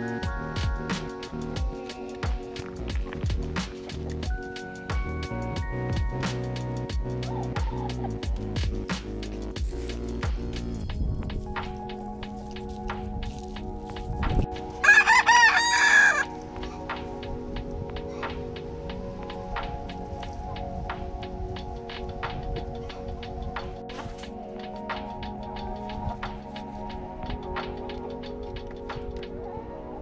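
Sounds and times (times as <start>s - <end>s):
background music with steady beat: 0.0s - 30.0s
rooster crowing: 14.8s - 16.3s.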